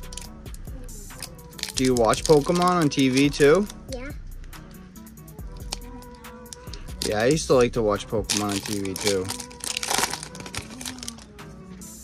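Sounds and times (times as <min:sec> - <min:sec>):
quiet background music: 0:00.0 - 0:12.0
trading cards crackling and rustling: 0:01.2 - 0:03.8, 0:08.2 - 0:11.4.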